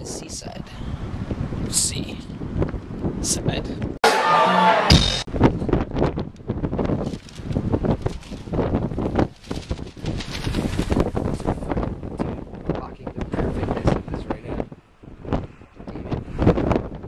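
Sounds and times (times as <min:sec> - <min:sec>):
wind buffeting microphone: 0:00.0 - 0:04.0, 0:05.3 - 0:17.0.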